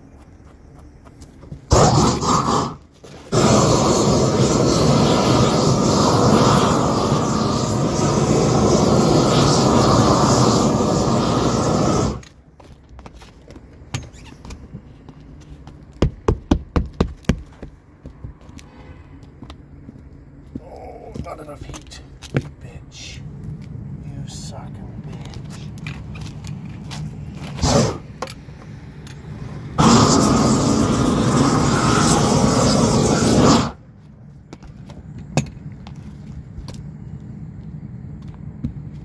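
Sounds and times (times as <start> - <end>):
roofing torch burning: 1.2 - 18.2, 19.2 - 39.0.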